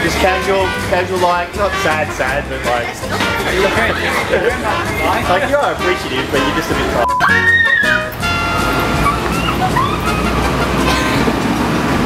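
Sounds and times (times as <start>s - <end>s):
limousine engine rumble: 8.1s - 12.0s.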